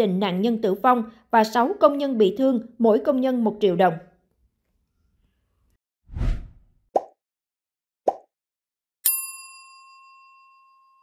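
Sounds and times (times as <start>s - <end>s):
bright bell-like chime: 9.0s - 11.0s.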